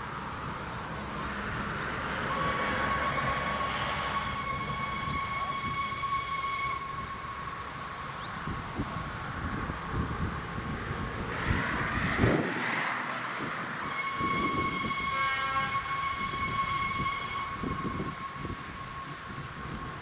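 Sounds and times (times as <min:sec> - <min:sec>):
distant steam locomotive whistle: 0:00.0 - 0:09.7, 0:13.0 - 0:20.0.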